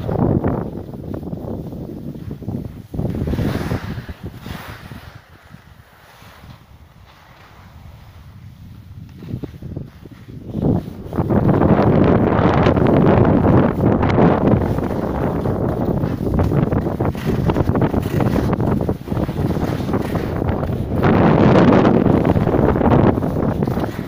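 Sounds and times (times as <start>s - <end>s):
skis scraping on snow: 0.0s - 24.0s
wind rushing over microphone: 0.0s - 24.0s.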